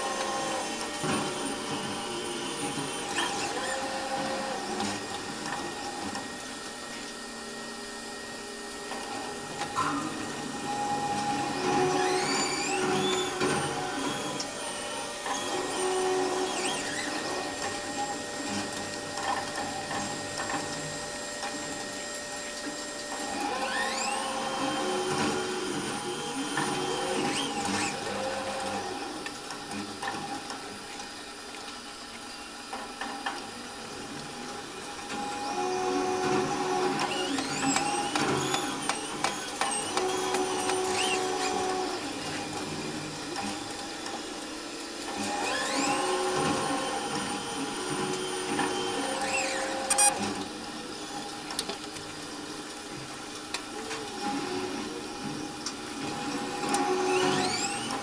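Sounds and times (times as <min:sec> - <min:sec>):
electric motor whine: 0:00.0 - 0:30.8, 0:33.6 - 0:58.0.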